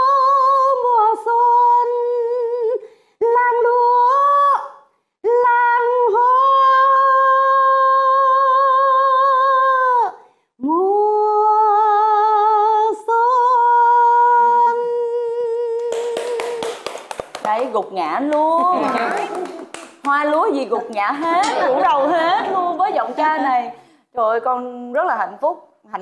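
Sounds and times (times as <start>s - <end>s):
woman singing unaccompanied: 0.0s - 16.8s
hand clapping: 15.8s - 21.8s.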